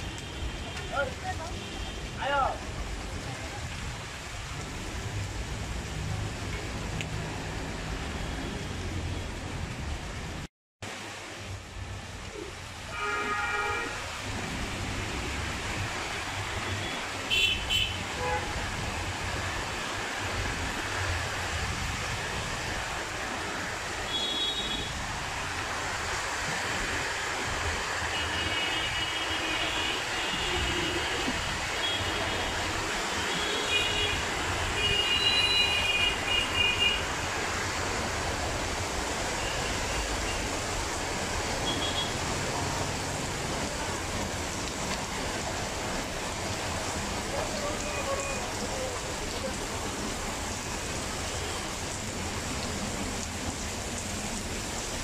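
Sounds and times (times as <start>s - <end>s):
heavy rain on tarpaulin: 0.0s - 55.0s.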